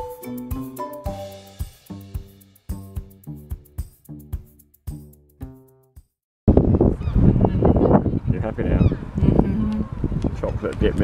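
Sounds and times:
wind buffeting microphone: 6.5s - 11.0s.

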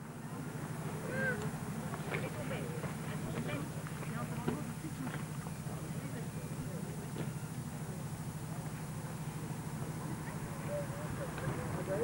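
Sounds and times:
distant voices talking: 0.0s - 12.0s.

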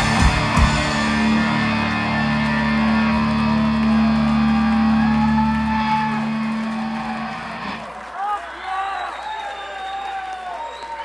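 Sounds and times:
electric guitar and bass chord: 0.0s - 7.8s
crowd cheering: 0.0s - 11.0s.

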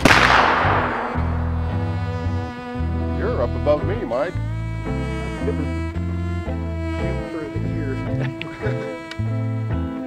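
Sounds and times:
gunshot: 0.0s - 1.6s
low bowed strings music: 1.2s - 10.0s.

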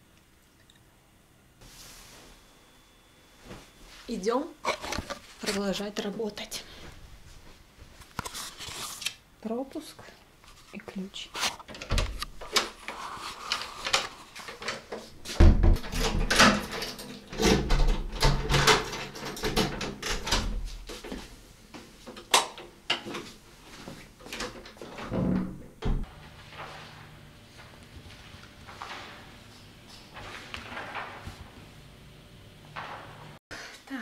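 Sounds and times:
doors opening and shutting: 11.6s - 12.8s, 13.9s - 21.2s, 24.3s - 31.9s, 32.5s - 33.4s.

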